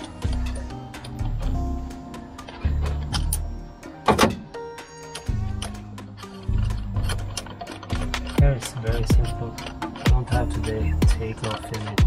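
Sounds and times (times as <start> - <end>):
ratchet clicking: 0.0 - 1.6, 5.0 - 12.0
background music: 0.0 - 12.0.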